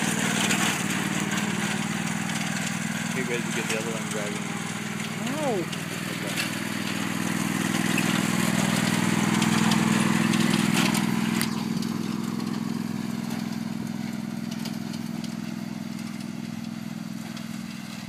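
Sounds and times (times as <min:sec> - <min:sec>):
riding lawn mower engine running: 0:00.0 - 0:18.0.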